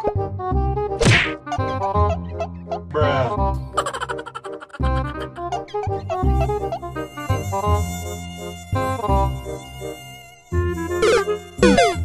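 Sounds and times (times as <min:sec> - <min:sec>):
low bass line: 0:01.6 - 0:03.8.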